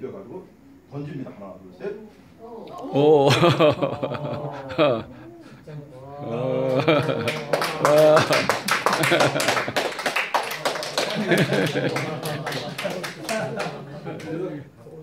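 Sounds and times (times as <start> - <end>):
small audience applauding: 6.4 - 14.6.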